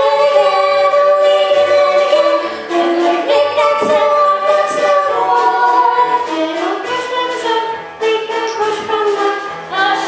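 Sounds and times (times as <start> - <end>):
chorus singing musical number: 0.0 - 10.0.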